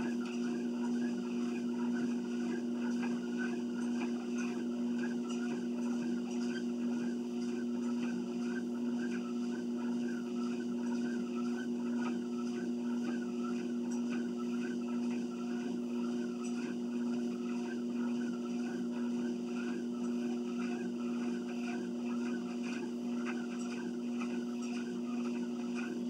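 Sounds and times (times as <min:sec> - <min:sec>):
footsteps on treadmill belt: 0:00.0 - 0:26.0
treadmill motor hum: 0:00.0 - 0:26.0.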